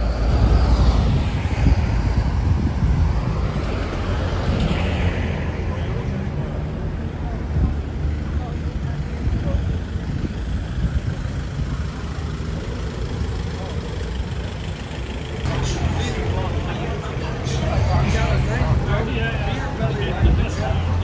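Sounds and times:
people chattering: 3.7 - 21.0.

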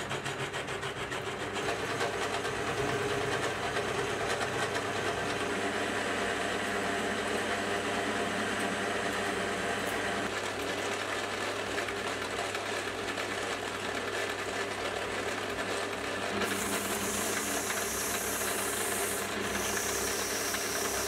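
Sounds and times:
lathe motor hum: 0.0 - 21.0
coolant mist spraying hiss: 16.5 - 21.0
tool rubbing on metal: 16.5 - 21.0.

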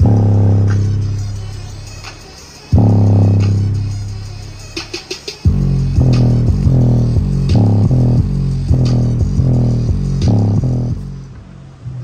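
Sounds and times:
bass-heavy music through woofer: 0.0 - 12.0.

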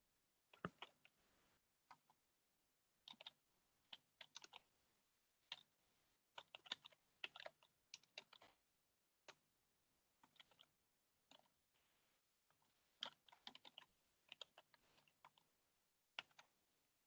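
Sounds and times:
computer keyboard typing: 3.0 - 4.7, 6.4 - 8.5, 13.0 - 15.5.

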